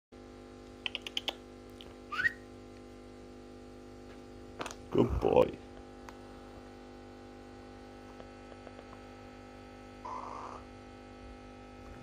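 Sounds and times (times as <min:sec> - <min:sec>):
steady electrical hum: 0:00.2 - 0:12.0
short rising whistle: 0:02.1 - 0:02.4.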